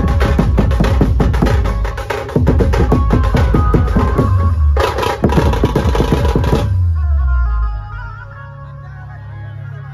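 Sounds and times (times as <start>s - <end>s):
fast loud drumming: 0.0s - 6.8s.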